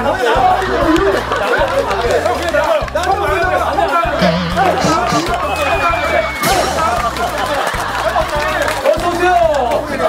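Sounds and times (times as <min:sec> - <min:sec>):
people yelling and chattering: 0:00.0 - 0:08.6
background music: 0:00.0 - 0:10.0.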